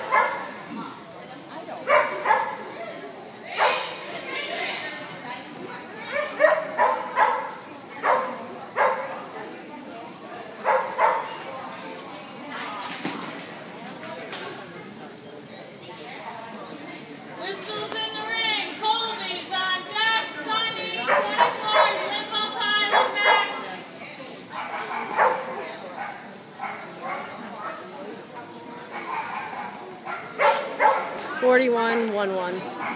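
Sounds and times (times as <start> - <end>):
dog barking: 0.0 - 0.5, 1.8 - 2.7, 3.6 - 3.9, 6.1 - 9.1, 10.6 - 11.4, 21.0 - 22.1, 22.9 - 23.6, 24.5 - 27.8, 28.9 - 31.2.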